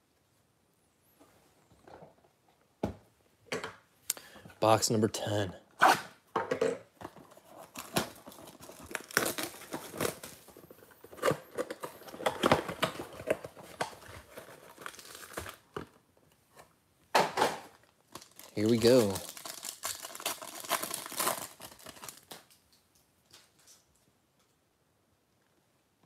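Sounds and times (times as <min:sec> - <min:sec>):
plastic shrink wrap crinkling and tearing: 0:07.2 - 0:16.0, 0:17.8 - 0:23.8.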